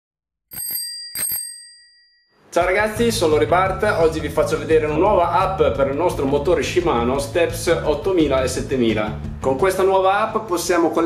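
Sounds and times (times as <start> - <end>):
bicycle bell ringing: 0.5 - 2.4.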